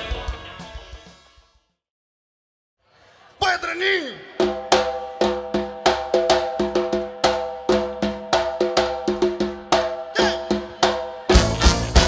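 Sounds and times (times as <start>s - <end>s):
drums and percussion playing: 0.0s - 1.6s, 4.3s - 12.0s.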